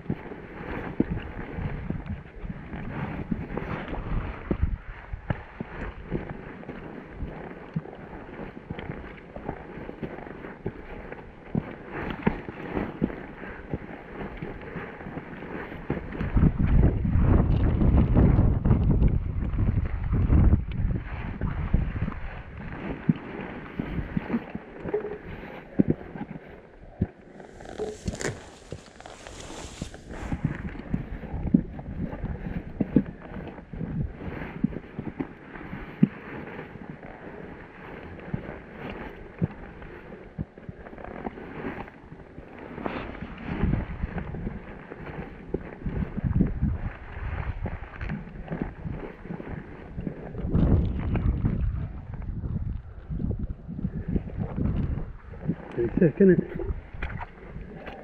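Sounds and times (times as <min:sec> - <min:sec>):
wind gusting over microphone: 0:00.0 - 0:58.0
footsteps crunching on rocky path: 0:25.8 - 0:39.2.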